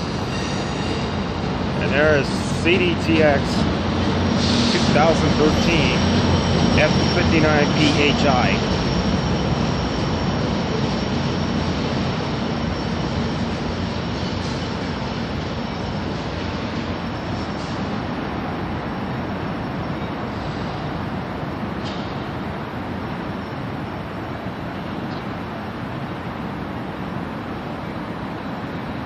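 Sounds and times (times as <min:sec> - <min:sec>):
diesel train rumbling: 0:00.0 - 0:29.0.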